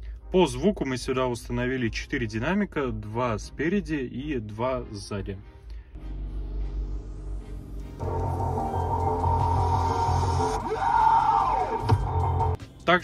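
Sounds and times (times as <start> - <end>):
music from car speakers: 6.0 - 12.7.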